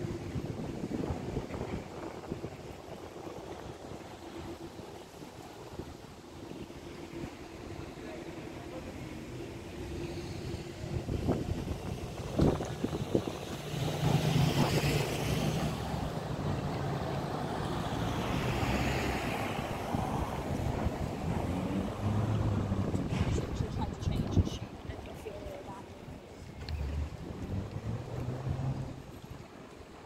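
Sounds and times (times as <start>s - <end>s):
traffic noise: 0.0s - 30.0s
vehicle engine humming: 6.6s - 25.6s, 26.2s - 30.0s.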